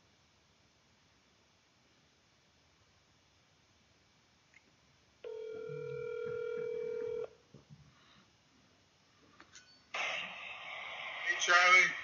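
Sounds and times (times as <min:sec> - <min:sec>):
telephone ringback tone: 0:05.2 - 0:07.4
steady line hiss: 0:07.6 - 0:12.0.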